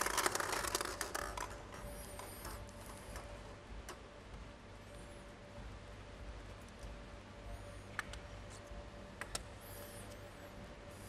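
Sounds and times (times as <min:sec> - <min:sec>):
plastic balls clattering in glass bowl: 0:00.0 - 0:01.6
plastic ball twisted open: 0:00.0 - 0:02.3.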